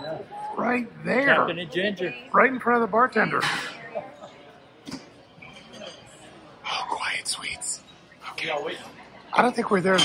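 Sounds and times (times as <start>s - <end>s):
woman whispering: 6.6s - 7.8s.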